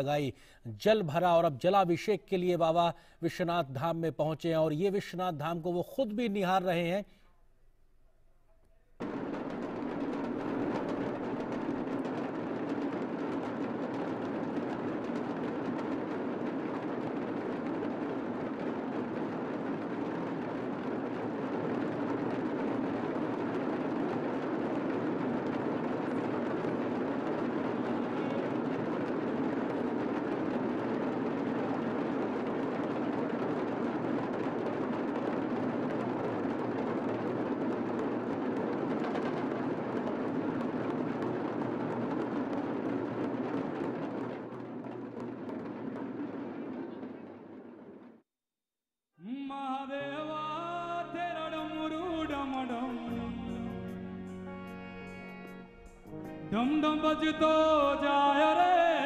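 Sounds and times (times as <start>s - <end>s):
drums rolling: 9.0s - 48.2s, 50.2s - 59.0s.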